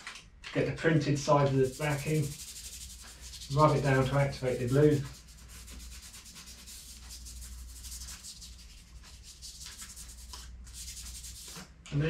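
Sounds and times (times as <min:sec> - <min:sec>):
paper rubbing over tape: 0:01.4 - 0:11.7.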